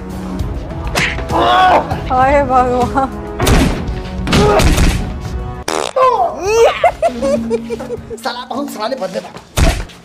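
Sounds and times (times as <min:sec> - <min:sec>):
background music: 0:00.0 - 0:10.0
woman laughing: 0:06.5 - 0:08.2.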